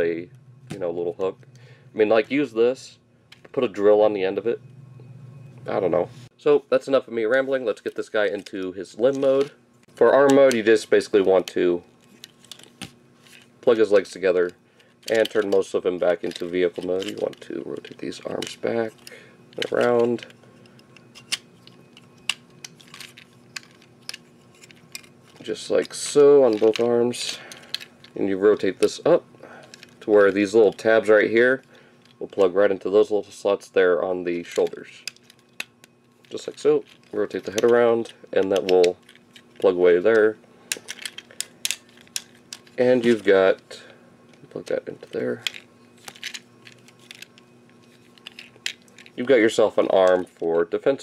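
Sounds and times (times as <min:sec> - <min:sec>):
faint steady hum: 0:00.0 - 0:51.0
plastic toy parts clicking: 0:40.7 - 0:42.8, 0:45.4 - 0:47.4.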